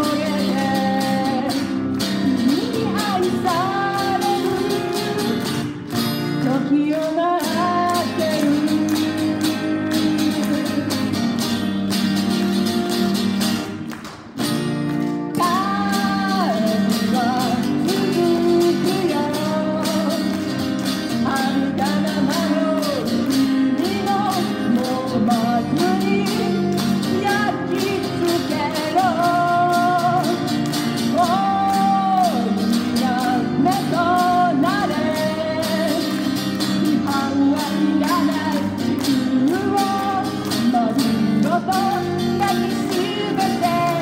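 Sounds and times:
woman singing into a microphone: 0.0 - 11.4, 15.2 - 44.0
acoustic guitar: 0.0 - 44.0.

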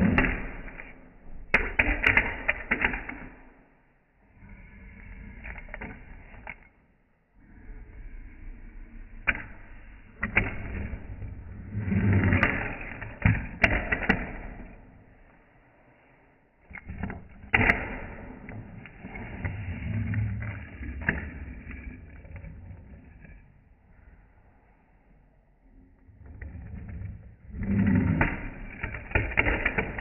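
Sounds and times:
fingerboard clacking on tabletop: 1.5 - 3.6
fingerboard wheels rolling: 9.3 - 15.0, 26.2 - 30.0.

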